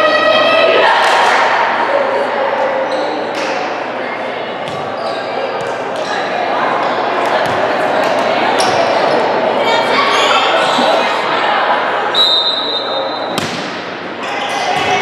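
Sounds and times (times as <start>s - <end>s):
overlapping voices echoing: 10.0s - 12.1s.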